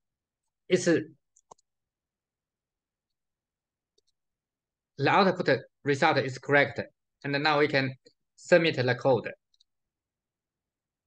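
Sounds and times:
computer mouse clicks: 1.3s - 1.8s.

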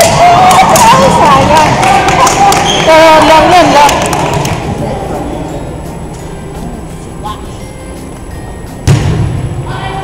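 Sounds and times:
volleyball being hit and bounced: 0.0s - 4.7s, 8.8s - 9.4s.

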